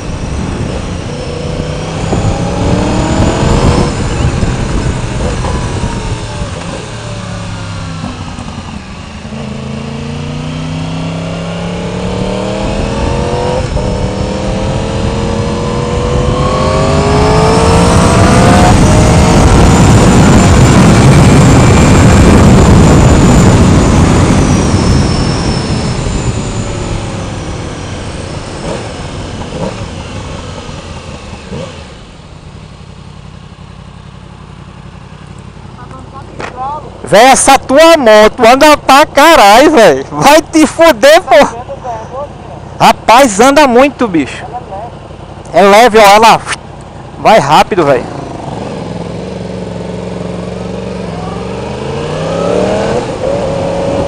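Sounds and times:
wind rush over microphone: 0:00.0 - 0:06.9, 0:12.2 - 0:28.0
motorcycle engine accelerating: 0:00.0 - 0:54.0.

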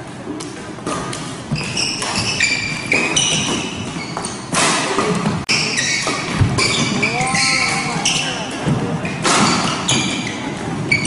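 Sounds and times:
shoes squeaking on wooden court: 0:00.9 - 0:11.0.

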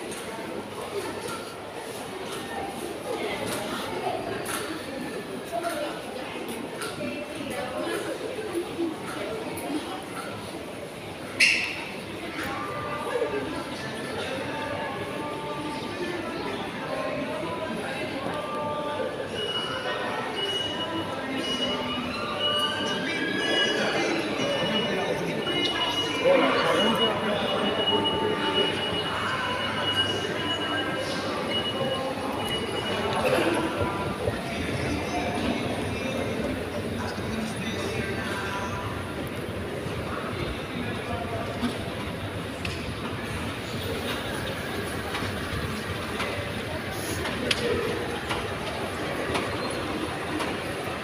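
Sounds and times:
faint voices: 0:00.0 - 0:51.0.

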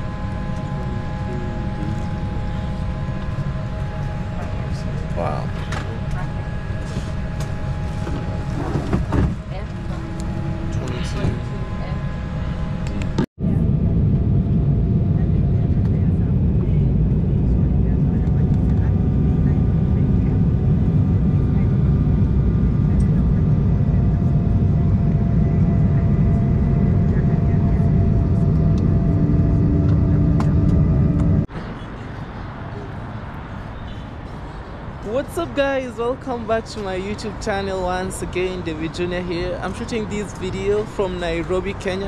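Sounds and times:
faint whining tones: 0:00.0 - 0:13.8
jet airliner cabin rumble: 0:00.0 - 0:32.0
outdoor background noise: 0:00.0 - 0:42.0.

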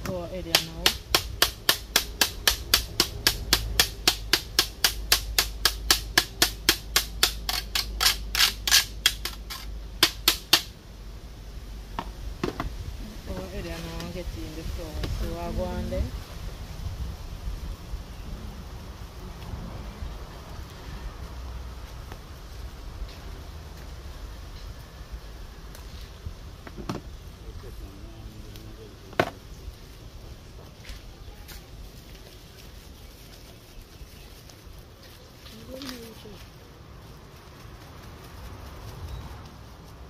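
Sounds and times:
person speaking: 0:00.0 - 0:01.0, 0:13.0 - 0:16.2.

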